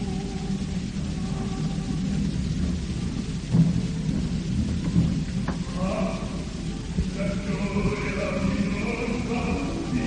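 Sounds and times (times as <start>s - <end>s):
choral voices: 0.0s - 3.5s, 5.4s - 10.0s
heavy drum strokes: 0.0s - 10.0s
orchestra playing low rumbling passage: 0.0s - 10.0s.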